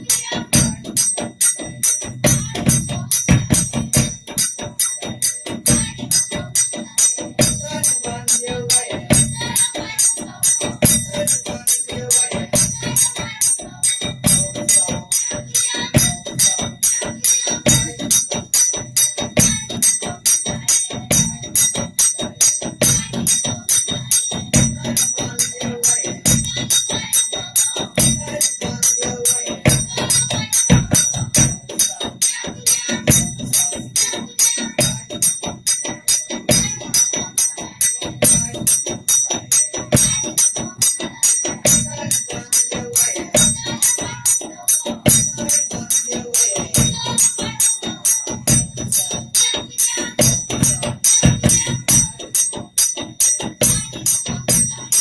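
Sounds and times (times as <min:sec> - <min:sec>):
folk dance drum beat: 0:00.0 - 0:55.0
ringing bells or cymbals: 0:00.0 - 0:55.0.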